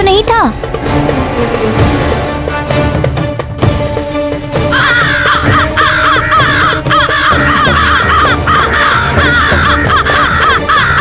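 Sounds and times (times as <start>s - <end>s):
dramatic background music: 0.0s - 11.0s
crows cawing: 4.7s - 11.0s.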